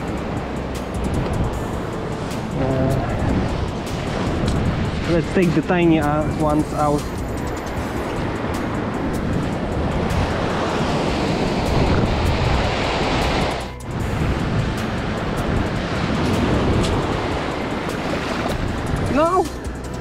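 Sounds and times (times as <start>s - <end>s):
background music: 0.0s - 20.0s
sea surf washing: 0.0s - 20.0s
wind on microphone: 0.0s - 20.0s.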